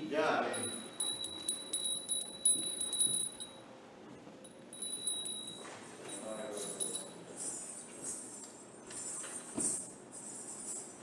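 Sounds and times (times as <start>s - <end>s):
hand bell ringing: 0.5s - 3.7s, 4.4s - 7.7s.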